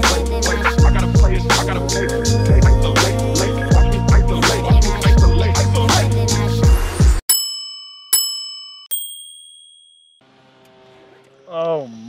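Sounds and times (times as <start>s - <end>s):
hip-hop background music: 0.0s - 7.2s
bell-like dings: 7.3s - 10.2s.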